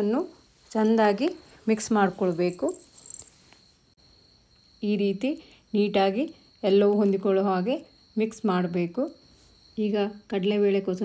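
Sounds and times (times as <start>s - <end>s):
woman speaking: 0.0s - 2.9s, 4.8s - 9.2s, 9.8s - 11.0s
faint high-pitched whine: 0.0s - 11.0s.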